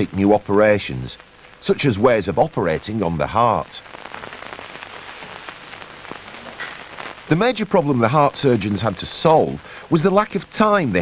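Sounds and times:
crackling hiss: 0.0 - 11.0.

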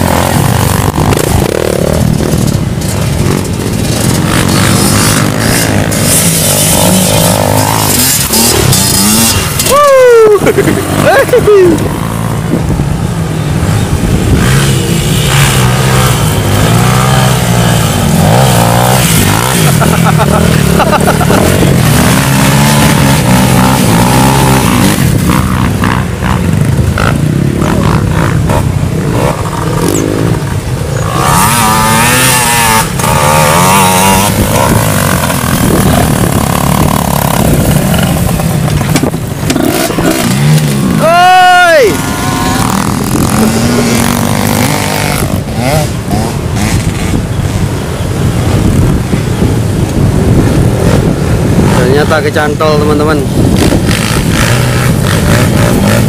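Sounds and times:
dirt bike engines revving: 0.0 - 56.0
crowd shouting and chattering: 35.4 - 51.8.

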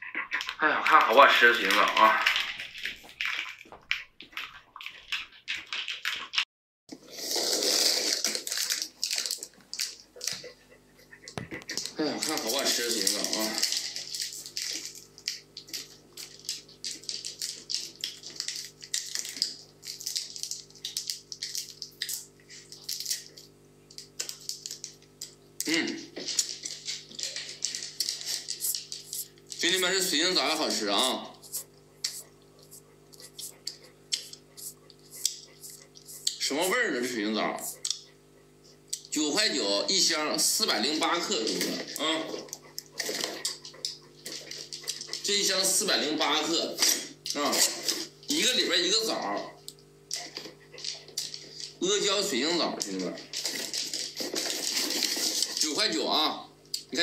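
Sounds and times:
plastic wrappers crinkling: 0.2 - 6.4, 7.2 - 10.6, 11.2 - 36.4, 40.0 - 46.0, 50.1 - 56.3
faint steady hum: 6.9 - 57.0.

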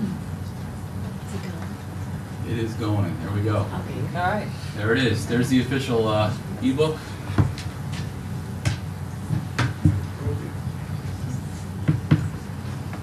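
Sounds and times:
room hum: 0.0 - 13.0.

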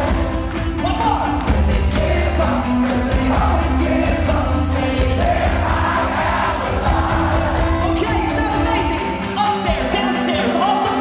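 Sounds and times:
male lead vocal: 0.0 - 11.0
pop-punk band playing live: 0.0 - 11.0.

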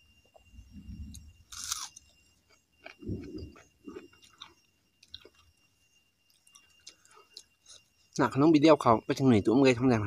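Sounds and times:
person chewing food: 1.1 - 5.6, 6.2 - 7.9.

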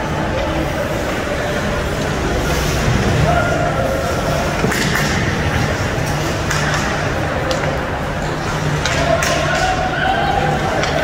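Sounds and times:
faint voices: 0.0 - 11.0
low rink rumble: 0.0 - 11.0
skates scraping ice: 1.8 - 11.0.

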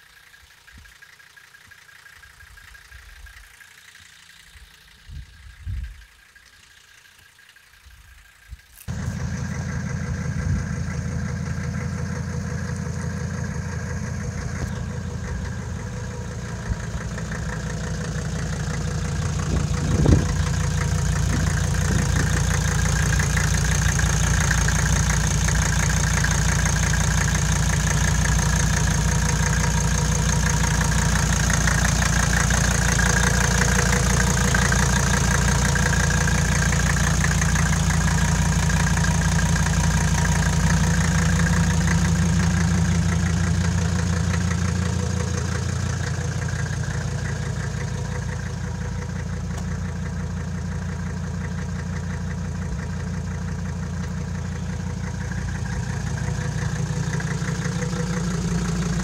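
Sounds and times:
diesel engine idling: 0.0 - 59.0.

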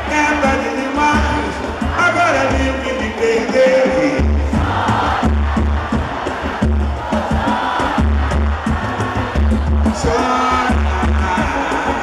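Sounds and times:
crowd singing and shouting: 0.0 - 12.0
live band playing loudly: 0.0 - 12.0.

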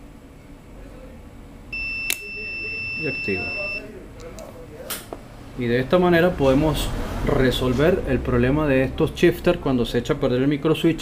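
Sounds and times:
multimeter continuity beep: 1.7 - 3.9.

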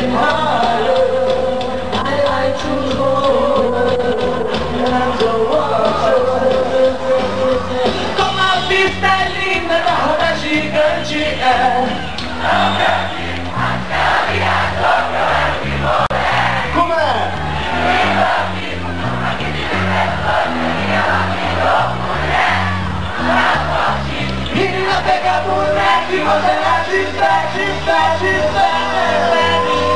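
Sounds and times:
bass line: 0.0 - 29.9
crowd shouting and singing along: 0.0 - 29.9
rock band playing live: 0.0 - 29.9.

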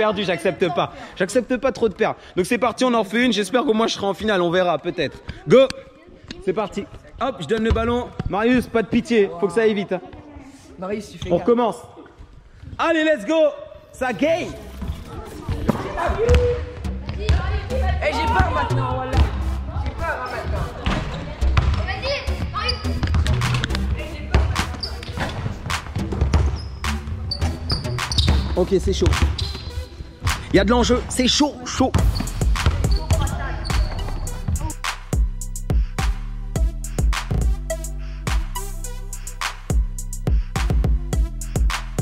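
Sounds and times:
basketballs bouncing on gym floor: 6.3 - 8.7, 15.5 - 17.6, 18.3 - 22.1, 22.9 - 34.7
music with bass and beat: 32.0 - 42.0.

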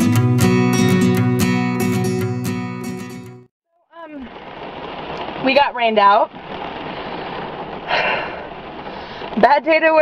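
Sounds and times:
heavy rain on car roof: 4.0 - 10.0
breathy exhale: 7.1 - 9.4.

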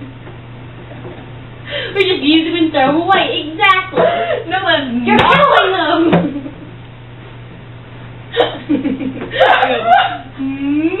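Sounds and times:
low steady hum: 0.0 - 11.0
girl laughing hard: 4.0 - 4.5, 8.3 - 10.4.

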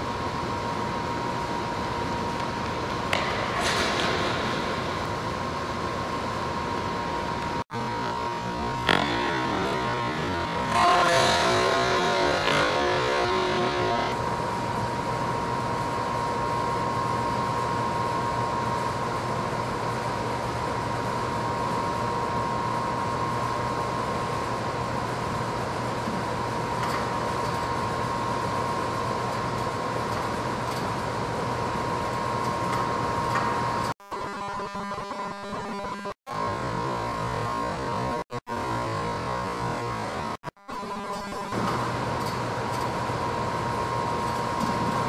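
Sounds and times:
mechanical droning with whine: 0.0 - 45.0.

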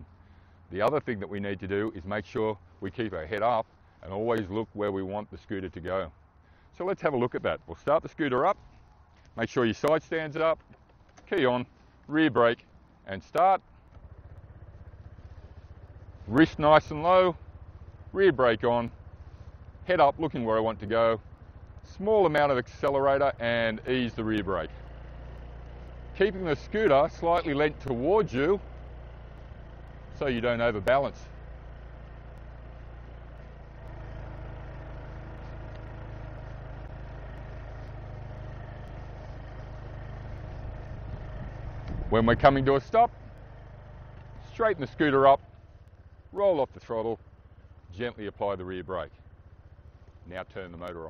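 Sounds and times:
scooter engine idling: 0.0 - 51.0.

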